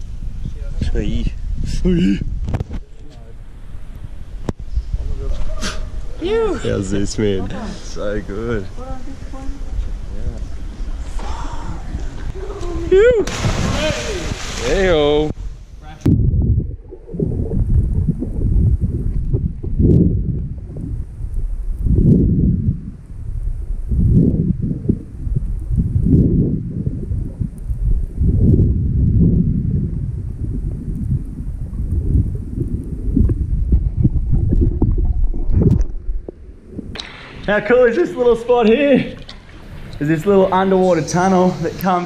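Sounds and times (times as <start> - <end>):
muffled underwater water rumbling: 0.0 - 41.7.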